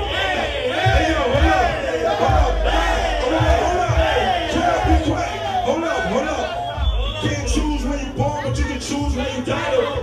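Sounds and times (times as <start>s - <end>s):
people shouting: 0.0s - 7.6s, 8.6s - 10.0s
hip-hop beat with heavy bass: 0.0s - 10.0s.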